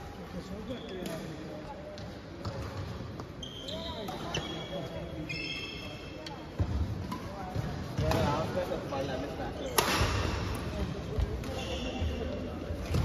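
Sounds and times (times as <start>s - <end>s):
shoes squeaking on court floor: 0.4s - 9.8s, 10.6s - 13.0s
racket hitting shuttlecock: 9.7s - 11.6s.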